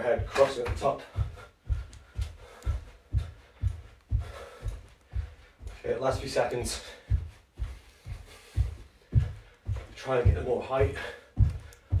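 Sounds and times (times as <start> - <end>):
feet thudding on carpet: 0.2 - 12.0.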